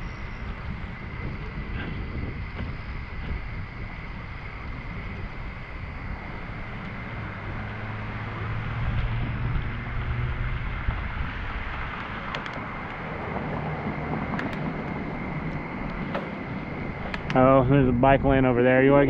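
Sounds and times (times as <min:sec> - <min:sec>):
road and traffic noise: 0:00.0 - 0:19.0
wind rushing over microphone: 0:00.0 - 0:19.0
light clicks: 0:12.0 - 0:13.0, 0:14.4 - 0:16.3, 0:17.0 - 0:17.4.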